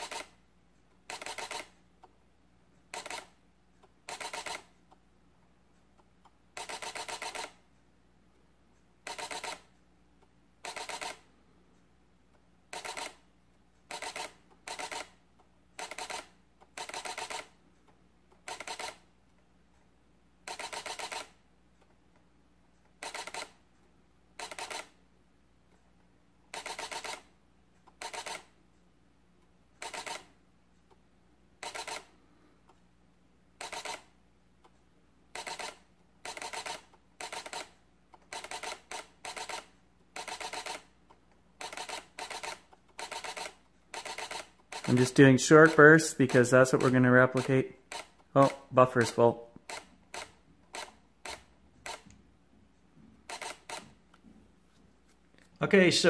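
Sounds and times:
camera shutter rapid clicks: 0:00.0 - 0:00.4, 0:01.0 - 0:01.8, 0:02.9 - 0:03.4, 0:04.0 - 0:04.7, 0:06.6 - 0:07.6, 0:09.0 - 0:09.7, 0:10.6 - 0:11.3, 0:12.7 - 0:13.2, 0:13.8 - 0:15.2, 0:15.8 - 0:17.6, 0:18.4 - 0:19.1, 0:20.5 - 0:21.4, 0:23.0 - 0:23.6, 0:24.4 - 0:25.0, 0:26.5 - 0:27.3, 0:27.9 - 0:28.5, 0:29.8 - 0:30.4, 0:31.6 - 0:32.2, 0:33.6 - 0:34.1, 0:35.3 - 0:40.9, 0:41.6 - 0:52.1, 0:53.2 - 0:54.0.

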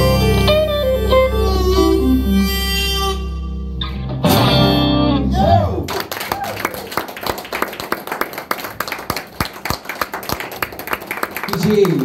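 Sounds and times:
audience applauding: 0:05.8 - 0:12.0.

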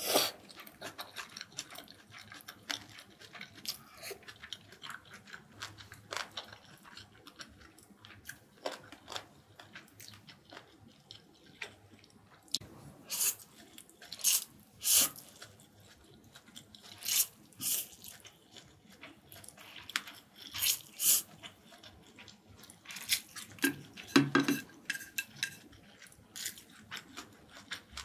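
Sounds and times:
chewing: 0:00.2 - 0:28.0
noodles being slurped: 0:13.0 - 0:28.0.

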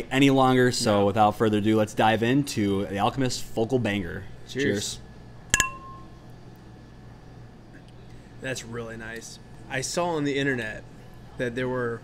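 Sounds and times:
glasses clinking: 0:05.5 - 0:06.1.

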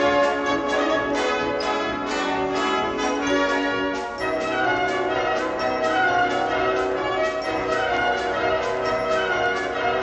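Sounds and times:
church bells ringing: 0:00.0 - 0:10.0.

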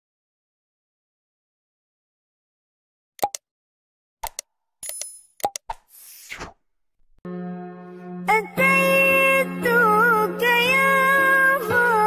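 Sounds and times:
mouse clicks: 0:03.2 - 0:03.4, 0:04.2 - 0:05.9.

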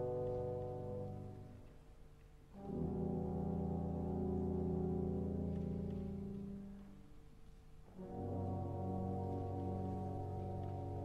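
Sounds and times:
orchestral music: 0:02.6 - 0:06.6, 0:07.9 - 0:11.0.

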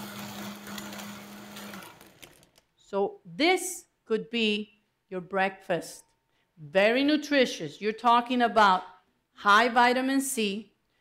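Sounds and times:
blender running: 0:00.0 - 0:02.5.

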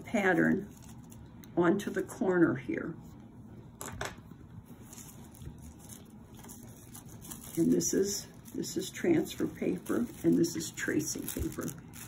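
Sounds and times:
paper rustling: 0:00.5 - 0:01.2, 0:04.8 - 0:12.0.

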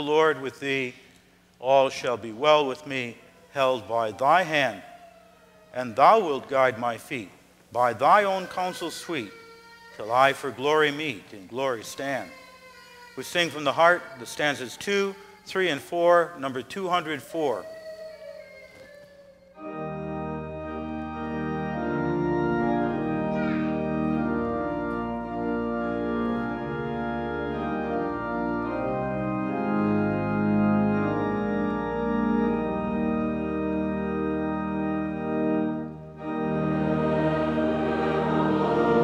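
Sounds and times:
church organ playing chords: 0:00.0 - 0:01.0, 0:05.8 - 0:07.2, 0:07.8 - 0:09.4, 0:19.6 - 0:39.0.

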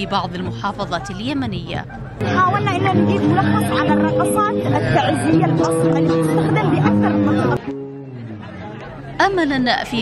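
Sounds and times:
background music with held notes: 0:02.2 - 0:09.2.

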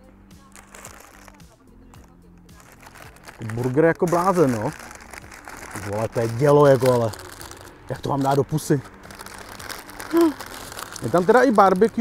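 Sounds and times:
paper wrapper crinkling: 0:00.5 - 0:12.0
person humming mm: 0:10.1 - 0:10.4.

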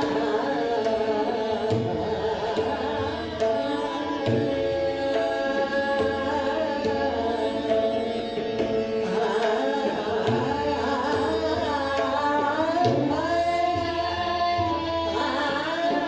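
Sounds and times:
harmonium: 0:00.0 - 0:16.0
tabla strokes: 0:00.0 - 0:16.0
tanpura drone: 0:00.0 - 0:16.0
woman singing classical vocal: 0:00.0 - 0:16.0.

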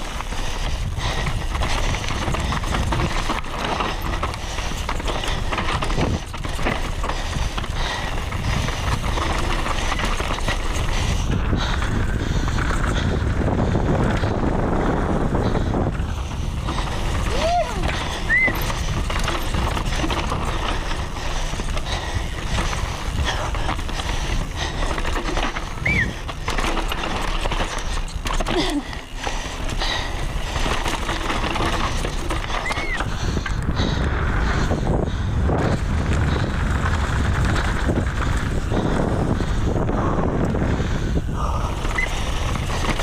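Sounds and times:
bike tyres crunching on rocks: 0:00.0 - 0:15.2, 0:15.9 - 0:34.5, 0:35.4 - 0:39.8, 0:40.6 - 0:43.0
bike chain and frame rattling: 0:00.0 - 0:43.0
wind rumble on microphone: 0:00.0 - 0:43.0.

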